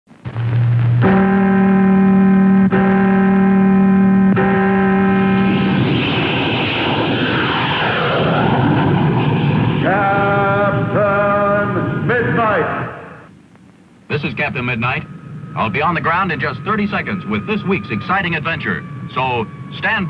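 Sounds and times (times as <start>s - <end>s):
airplane engine noise: 0.1s - 20.0s
long sustained tolling tones: 0.3s - 13.3s, 14.3s - 20.0s.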